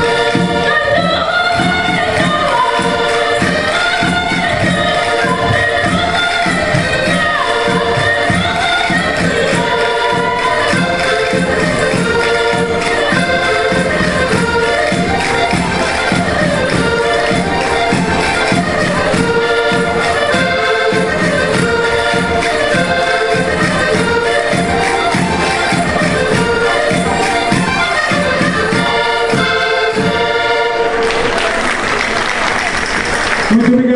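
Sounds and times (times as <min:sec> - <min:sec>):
group singing: 0:00.0 - 0:31.1
accordions: 0:00.0 - 0:33.9
steady beat: 0:01.4 - 0:30.6
audience applause: 0:01.9 - 0:33.9.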